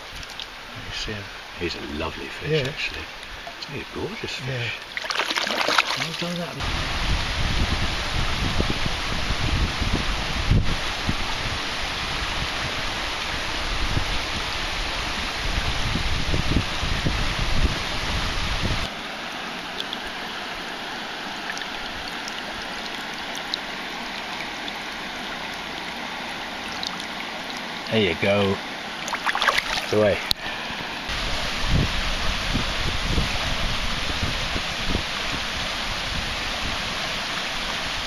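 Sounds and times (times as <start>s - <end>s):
river running over stones: 0.0s - 6.8s, 18.8s - 31.8s, 32.8s - 38.0s
wind buffeting microphone: 6.6s - 18.9s, 31.1s - 36.8s.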